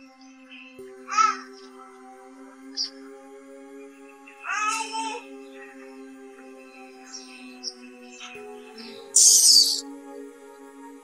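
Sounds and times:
soft film music: 0:00.0 - 0:11.0.

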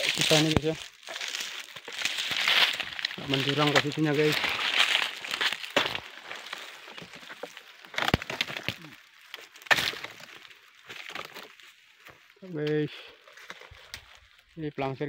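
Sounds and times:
small crackles: 0:00.0 - 0:14.9
fronds rustling: 0:00.0 - 0:15.0
chisel cracking into palm: 0:09.4 - 0:10.3.

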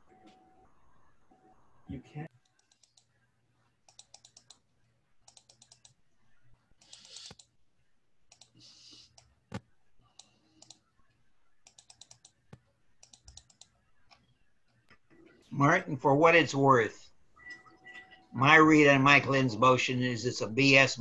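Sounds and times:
computer keyboard typing: 0:02.4 - 0:03.1, 0:03.8 - 0:04.6, 0:05.2 - 0:06.0, 0:06.8 - 0:07.6, 0:08.3 - 0:10.9, 0:11.6 - 0:14.9.

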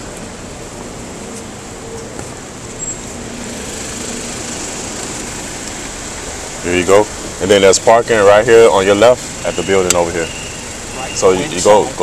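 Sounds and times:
motorcycle engine and road noise: 0:00.0 - 0:12.0.

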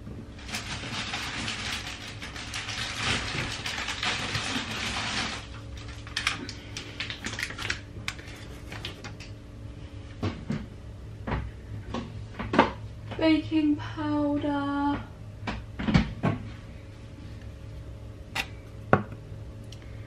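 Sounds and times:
plastic packets crinkling: 0:00.4 - 0:09.3.

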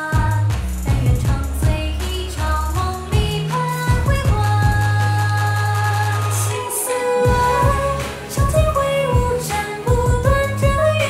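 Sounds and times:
pop music with drum beat: 0:00.0 - 0:11.0
woman singing: 0:00.0 - 0:11.0.

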